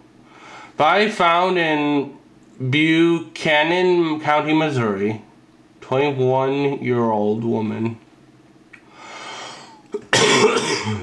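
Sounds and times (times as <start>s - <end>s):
breath in: 8.9s - 9.8s
person coughing: 9.9s - 11.0s.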